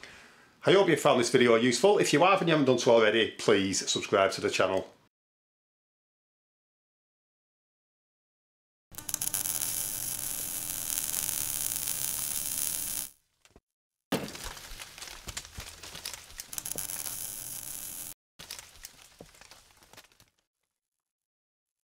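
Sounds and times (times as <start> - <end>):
crackling debris: 9.0 - 13.1, 14.1 - 20.5.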